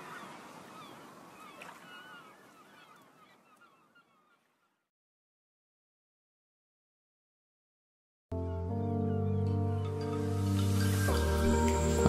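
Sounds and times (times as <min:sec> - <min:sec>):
faint bird chirps: 0:00.0 - 0:04.9.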